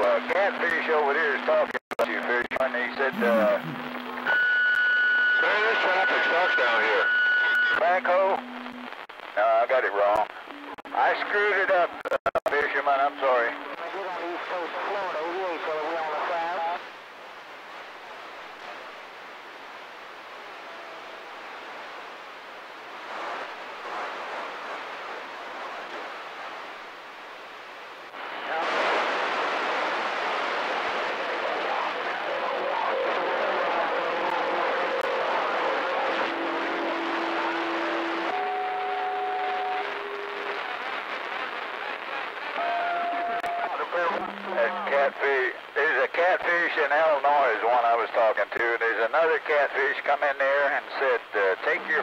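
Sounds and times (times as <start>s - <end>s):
radio static hiss: 0.0s - 52.0s
whistle tones over static: 3.2s - 8.9s, 36.0s - 41.3s, 42.1s - 44.1s.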